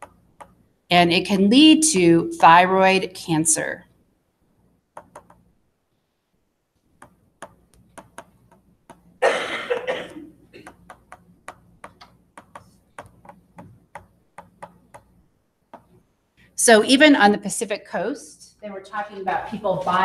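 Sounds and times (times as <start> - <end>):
stylus clicking on tablet: 0.0 - 0.6, 4.9 - 5.5, 6.9 - 9.2, 10.6 - 16.0.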